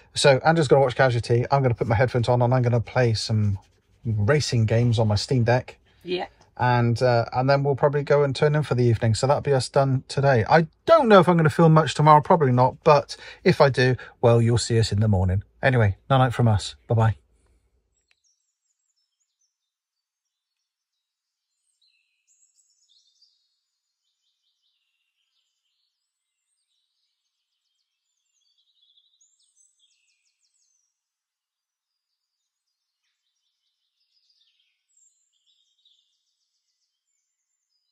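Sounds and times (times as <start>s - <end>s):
faint birdsong chirps and trills: 0.0s - 37.9s.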